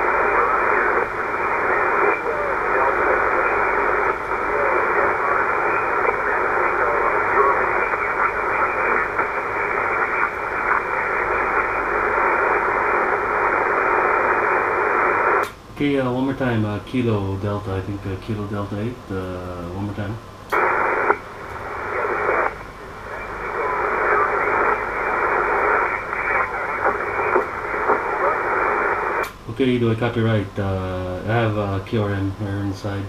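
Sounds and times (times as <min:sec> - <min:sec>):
faint radio voices: 0:00.0 - 0:15.5, 0:20.5 - 0:29.4
radio hiss and static: 0:00.0 - 0:33.0.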